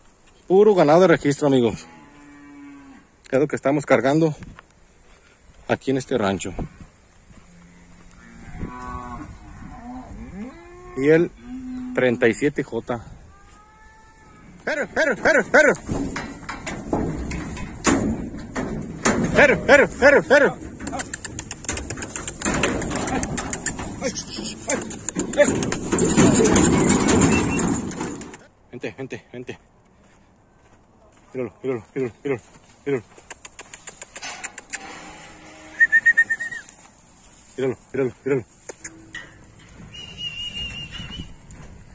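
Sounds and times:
cattle mooing: 7.5s - 12.2s, 34.7s - 36.2s
hooves clattering: 14.6s - 28.5s, 30.0s - 34.9s, 35.8s - 41.9s
cattle knocking metal rails: 14.7s - 28.5s.

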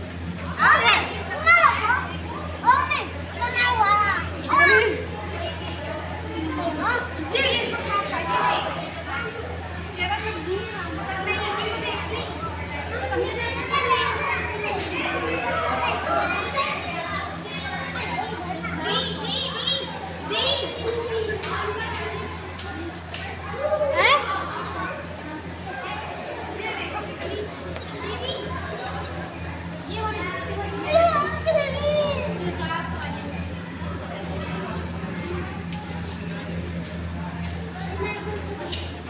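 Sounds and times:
children talking and calling out: 0.0s - 39.0s
steady low hum: 0.0s - 39.0s.

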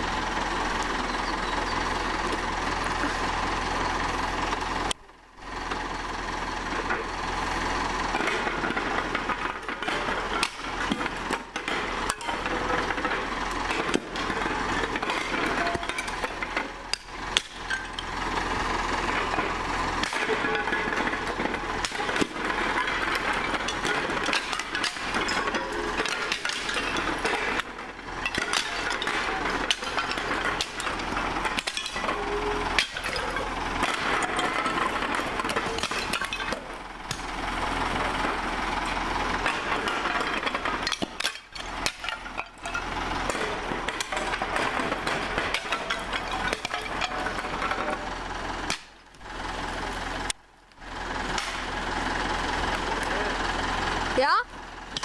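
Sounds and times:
roof tiles clattering and breaking: 8.2s - 18.1s, 19.0s - 37.3s, 37.9s - 49.0s.

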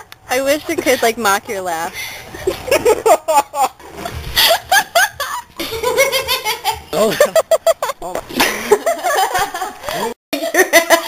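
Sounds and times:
hearty laughing: 2.3s - 11.0s.

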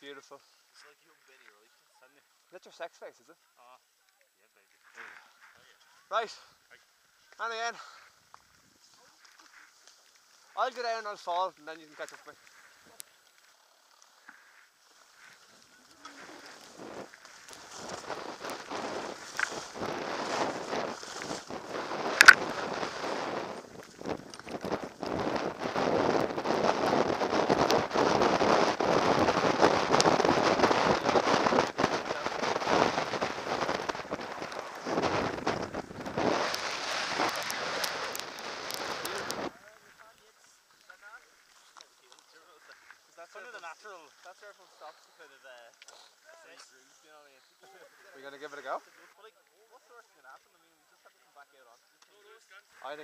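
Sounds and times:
skis scraping over snow: 6.7s - 45.4s
wind rushing: 17.7s - 39.5s
sharp click: 22.2s - 22.4s.

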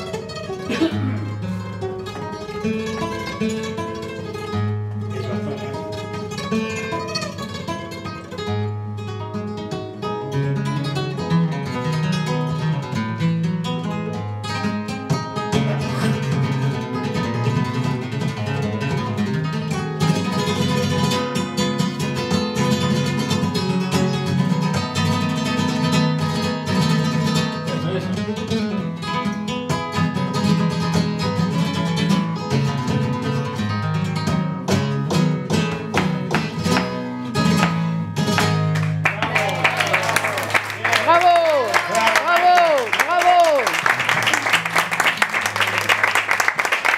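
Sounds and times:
flamenco guitar: 0.0s - 46.9s.

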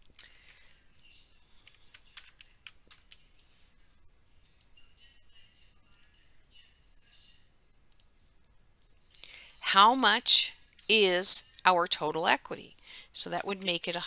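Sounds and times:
computer keyboard and mouse clicks: 1.6s - 3.2s.

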